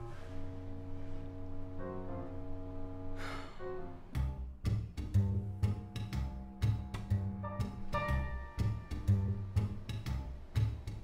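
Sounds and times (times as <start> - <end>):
background music with bass notes: 0.0 - 11.0.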